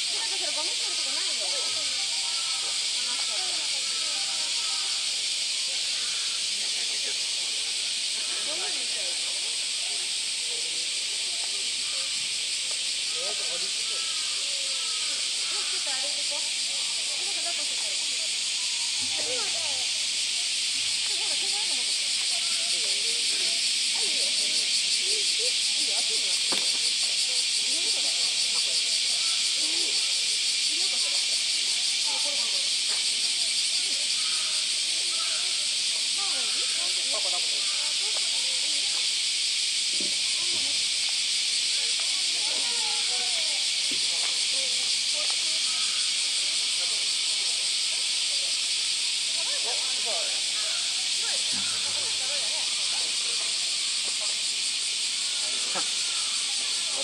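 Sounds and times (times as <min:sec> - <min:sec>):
cicada chorus: 0:00.0 - 0:57.0
faint voices talking: 0:00.0 - 0:57.0.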